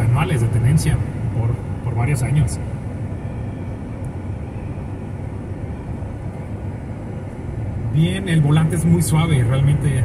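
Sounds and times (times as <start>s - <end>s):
in-cabin driving noise: 0.0s - 10.0s.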